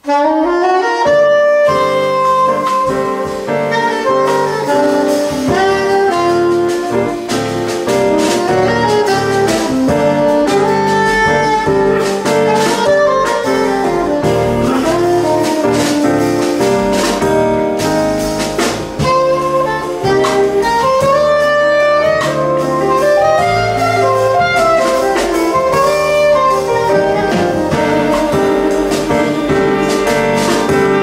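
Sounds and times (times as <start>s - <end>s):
soprano saxophone melody: 0.0s - 18.3s, 18.9s - 31.0s
drum kit with cymbals: 0.0s - 31.0s
electric bass: 0.0s - 31.0s
piano: 0.0s - 31.0s.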